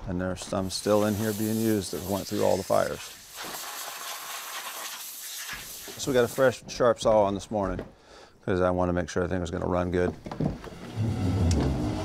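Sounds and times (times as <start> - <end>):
compressed-air blowgun hissing: 0.6 - 6.5.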